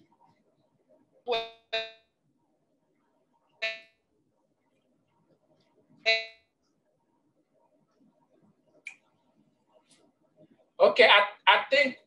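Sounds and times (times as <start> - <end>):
faint room noise: 0.0 - 12.0
short pitched tones: 3.6 - 4.0, 6.0 - 6.4.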